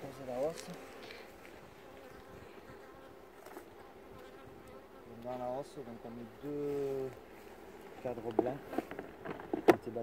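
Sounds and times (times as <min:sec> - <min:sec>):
bees buzzing: 0:00.8 - 0:08.0.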